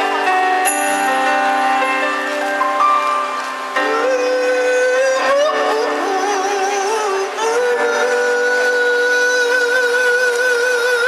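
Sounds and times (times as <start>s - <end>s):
backing track: 0.0s - 11.0s
man singing a long high note: 3.8s - 11.0s.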